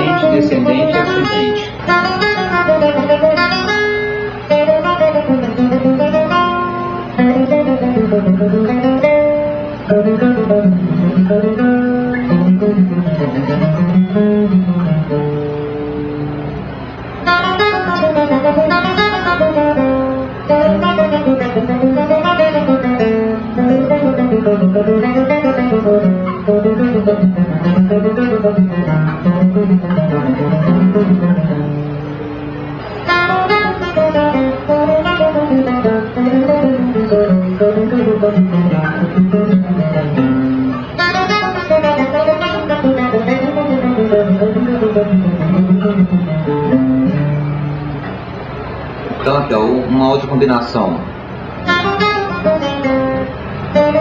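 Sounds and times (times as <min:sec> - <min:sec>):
guitar playing quick runs: 0:00.0 - 0:49.2, 0:51.2 - 0:54.0.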